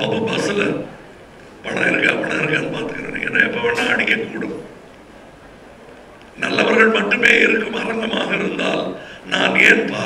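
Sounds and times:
man speaking through pa: 0:01.6 - 0:04.7.

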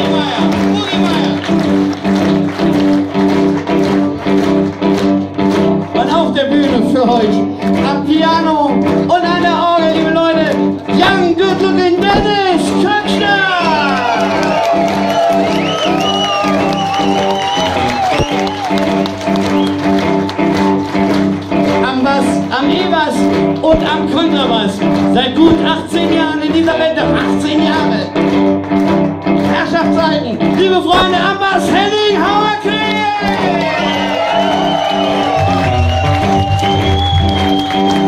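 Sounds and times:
electric blues band playing: 0:00.0 - 0:38.0
lead guitar bent notes: 0:00.0 - 0:38.0.

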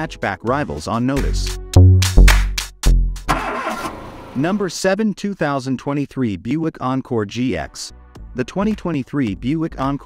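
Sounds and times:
deep booming hits: 0:01.7 - 0:03.3.

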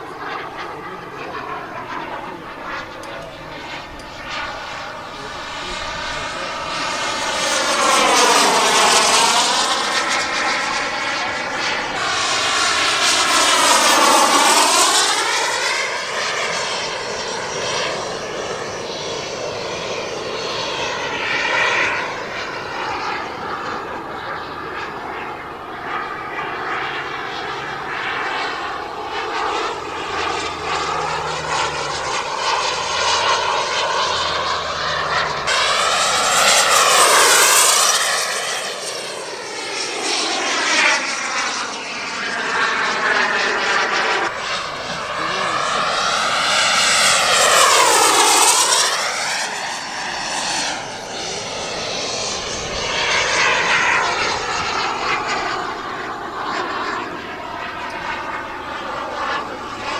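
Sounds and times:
model jet engine whine: 0:00.0 - 0:59.9.

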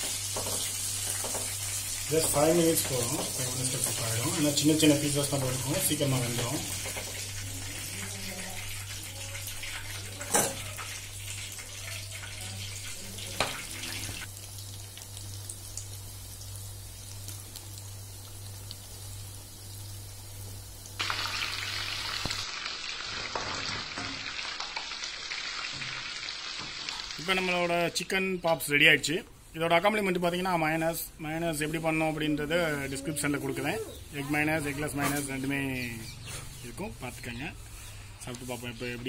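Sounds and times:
chicken sizzling in hot oil: 0:00.0 - 0:28.1.

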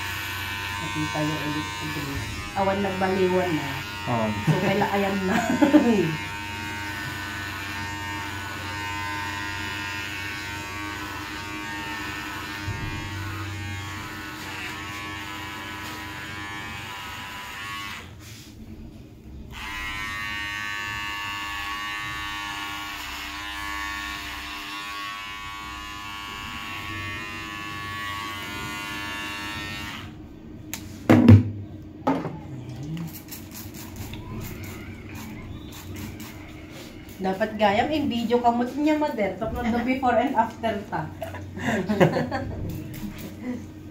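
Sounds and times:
electric hair clippers buzzing: 0:00.0 - 0:18.2, 0:19.5 - 0:30.2, 0:33.8 - 0:38.2.

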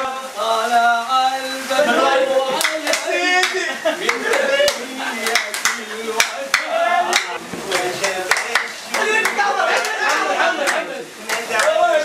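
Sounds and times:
man's lively voice: 0:00.0 - 0:12.0
men clapping hands: 0:02.5 - 0:11.8.

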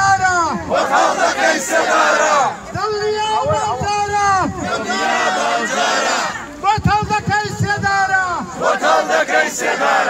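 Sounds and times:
crowd shouting slogans: 0:00.0 - 0:06.6, 0:08.2 - 0:10.0.

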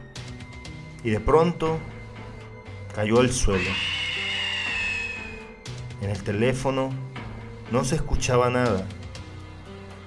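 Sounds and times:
low drone: 0:03.5 - 0:05.9
high tone sinking in pitch: 0:03.6 - 0:05.6.

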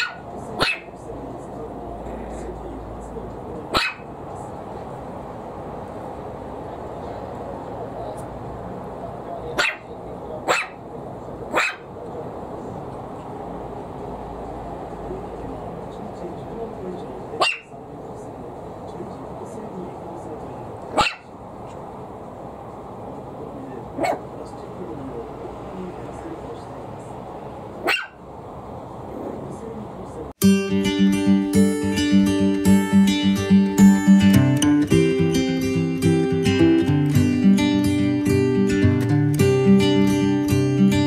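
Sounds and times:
puppy barking high: 0:00.0 - 0:01.0, 0:03.7 - 0:04.2, 0:09.5 - 0:10.8, 0:11.5 - 0:11.9, 0:17.4 - 0:17.8, 0:20.9 - 0:21.4, 0:23.9 - 0:24.3, 0:27.8 - 0:28.3.

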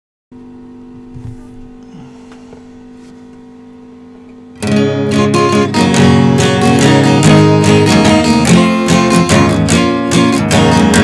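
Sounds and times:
low electrical hum: 0:00.4 - 0:10.3
soft handling knocks and rustles: 0:01.0 - 0:03.5.

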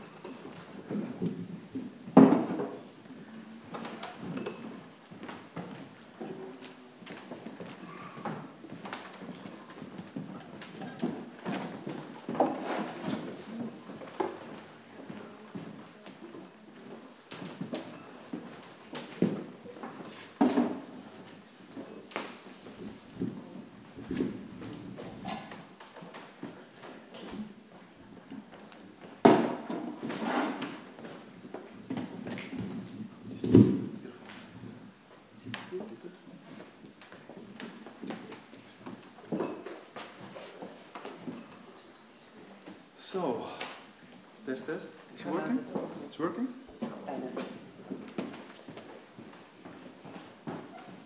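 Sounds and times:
low background noise: 0:00.0 - 0:51.0.

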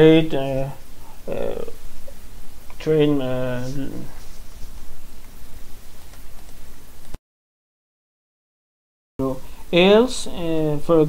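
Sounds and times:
microphone crackling hiss: 0:00.0 - 0:07.2
steady low hum: 0:00.0 - 0:07.2, 0:09.2 - 0:11.0.

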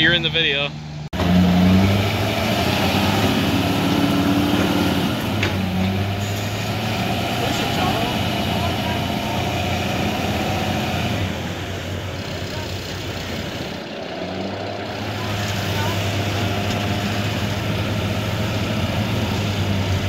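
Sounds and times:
diesel truck engine running: 0:00.0 - 0:20.0.

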